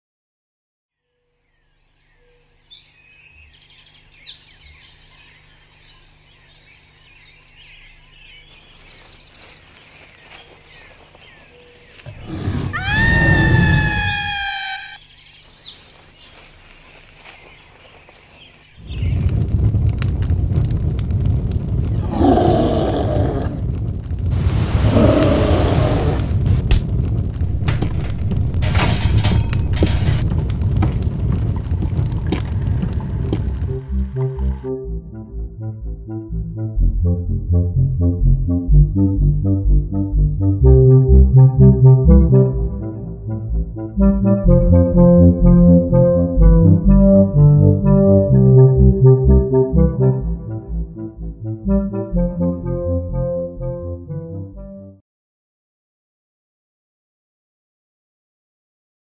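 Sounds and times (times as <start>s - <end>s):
groan-like sounds: 12.1s - 15.0s, 21.9s - 23.8s, 24.6s - 26.3s
long high cry rising in pitch: 12.6s - 15.0s
loud rumbling with crackles: 18.8s - 34.7s.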